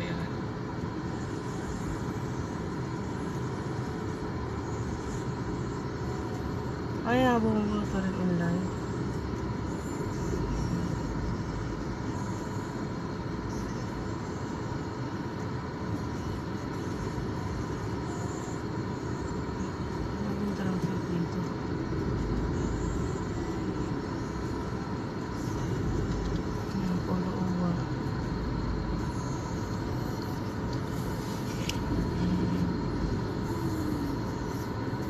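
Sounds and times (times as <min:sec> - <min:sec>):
car engine and tyres rumbling: 0:00.0 - 0:35.0.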